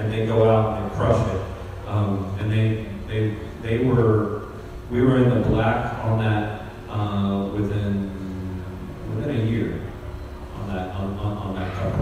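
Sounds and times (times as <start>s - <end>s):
man talking into microphone: 0.0s - 12.0s.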